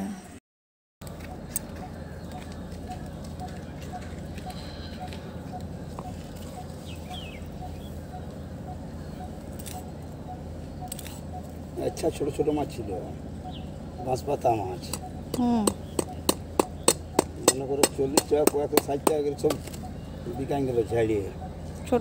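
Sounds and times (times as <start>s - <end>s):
bird chirp: 1.0s - 22.0s
outdoor background noise: 1.0s - 22.0s.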